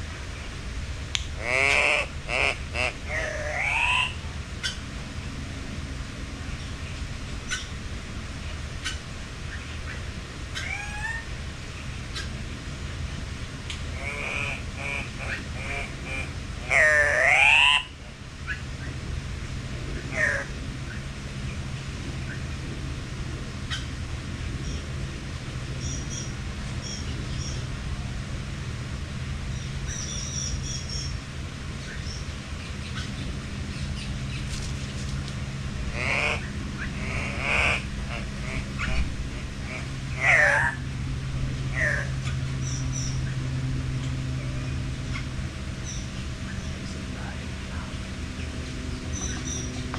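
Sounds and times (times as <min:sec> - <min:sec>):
steady low hum: 0:00.0 - 0:49.9
bird calls: 0:01.4 - 0:04.8, 0:07.5 - 0:07.8, 0:08.8 - 0:12.4, 0:19.9 - 0:21.6, 0:23.7 - 0:24.0, 0:25.8 - 0:27.7, 0:29.5 - 0:31.2, 0:31.8 - 0:40.8, 0:41.7 - 0:43.4, 0:44.0 - 0:49.9.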